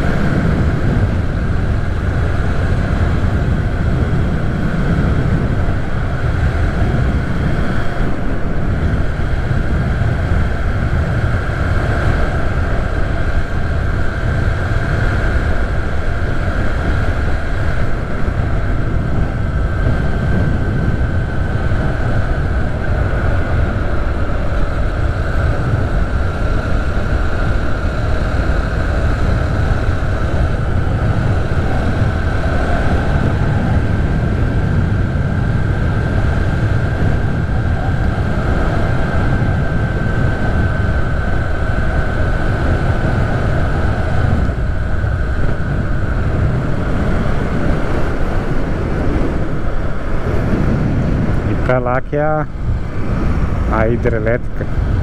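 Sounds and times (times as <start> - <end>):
faint steady whine: 0.0 - 55.0
wind buffeting microphone: 0.0 - 55.0.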